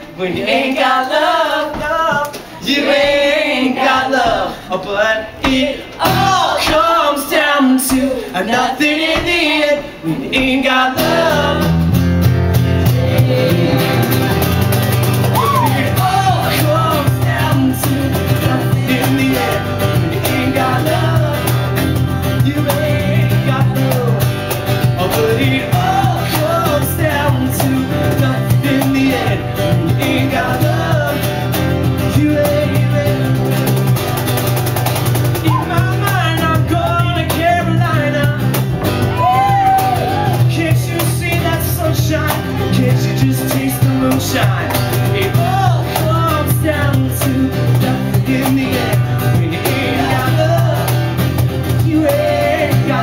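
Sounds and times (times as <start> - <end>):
live band playing instrumental: 11.1 - 53.0.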